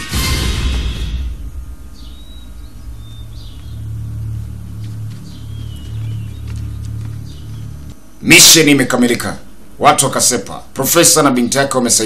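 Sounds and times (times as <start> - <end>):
low rumbling drone: 0.0 - 8.2
faint bird chirps: 1.4 - 8.2.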